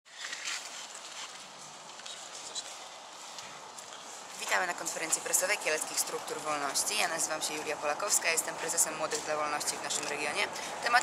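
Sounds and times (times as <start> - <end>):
steady town background hiss: 0.6 - 11.0.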